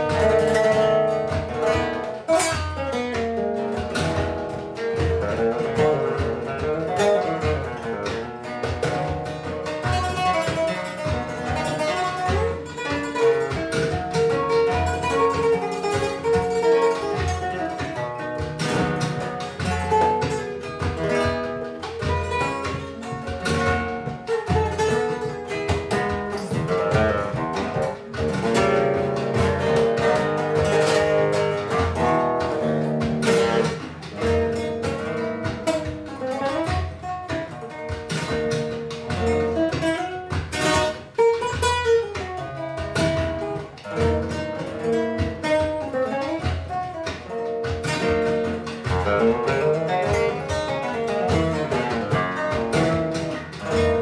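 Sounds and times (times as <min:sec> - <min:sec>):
nylon-string guitar playing: 0:00.0 - 0:54.0.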